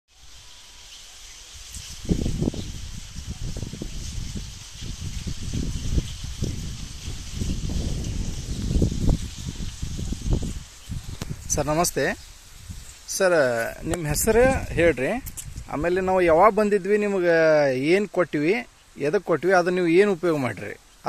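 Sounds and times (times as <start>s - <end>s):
leaves brushing microphone: 0.1s - 21.0s.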